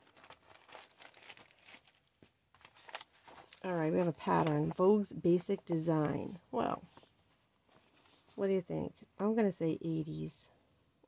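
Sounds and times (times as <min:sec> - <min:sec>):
paper crinkles and taps: 0:00.0 - 0:04.8
paper rustling: 0:00.0 - 0:05.8, 0:06.9 - 0:08.4.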